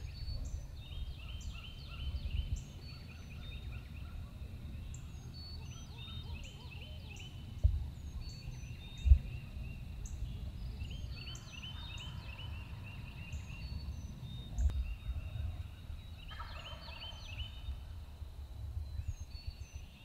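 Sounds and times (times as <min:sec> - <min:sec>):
songbirds chirping: 0:00.0 - 0:20.0
turkey gobbling: 0:16.3 - 0:17.2.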